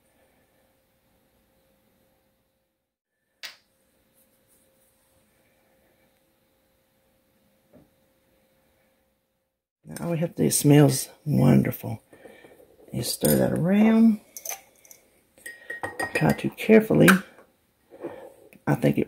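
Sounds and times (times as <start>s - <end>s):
faint steady hum: 0.0s - 2.8s, 3.6s - 19.0s.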